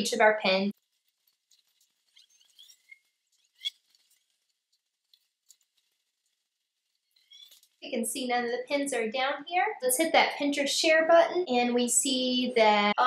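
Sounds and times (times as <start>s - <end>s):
faint high-pitched ticks and squeaks: 0.7s - 7.9s.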